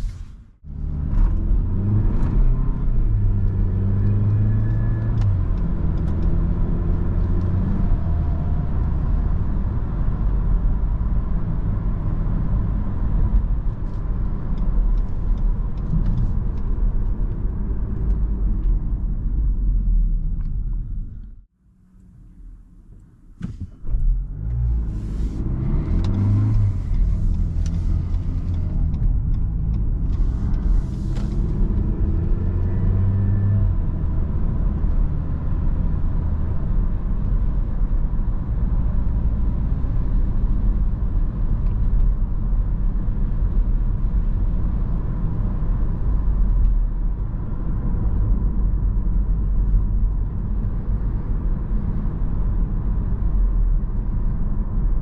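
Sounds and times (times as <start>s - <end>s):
car engine accelerating: 0.0s - 21.3s, 23.4s - 55.0s.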